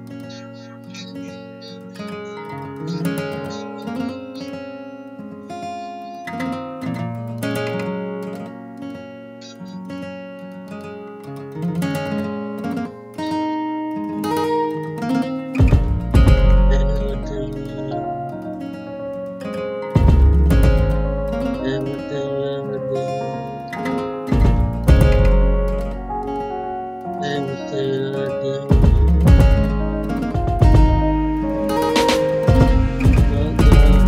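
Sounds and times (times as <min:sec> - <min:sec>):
electric guitar notes and chords: 0:00.0 - 0:34.0.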